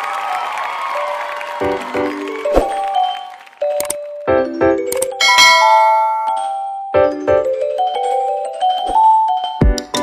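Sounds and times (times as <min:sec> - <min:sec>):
bell-like chime notes: 0:05.2 - 0:09.7.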